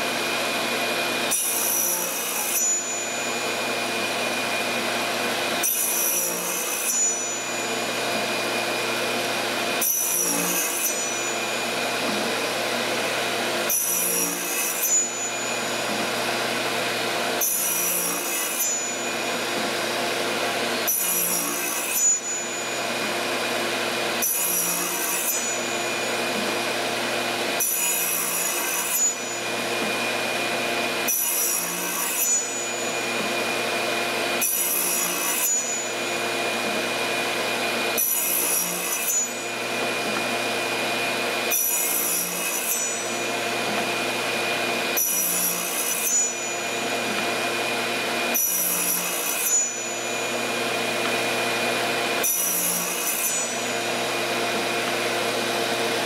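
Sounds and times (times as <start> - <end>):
radial arm saw running: 0.0 - 56.0
saw blade cutting wood: 0.0 - 56.0
shop vacuum running: 0.0 - 56.0.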